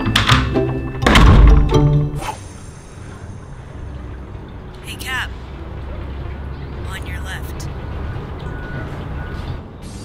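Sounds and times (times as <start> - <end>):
background music: 0.0 - 10.0
door slamming: 0.2 - 1.8.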